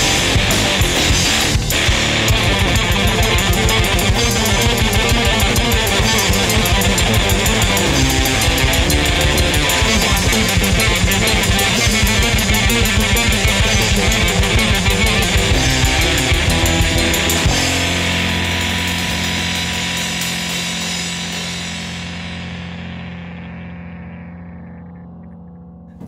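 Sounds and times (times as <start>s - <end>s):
instrumental rock music: 0.0s - 26.0s.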